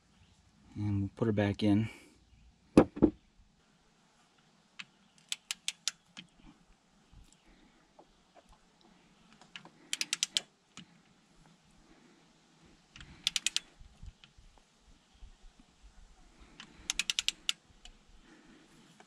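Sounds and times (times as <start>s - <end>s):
torque wrench ratchet clicking: 13.2s - 13.7s, 16.8s - 17.6s.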